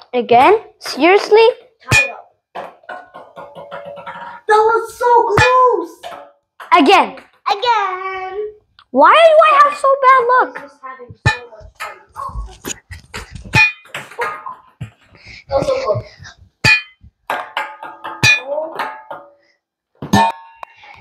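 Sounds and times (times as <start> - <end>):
sharp knocks and clacks: 0.4 - 7.7, 9.5 - 19.4
children's voices: 4.3 - 6.1, 6.8 - 13.4, 15.4 - 16.4.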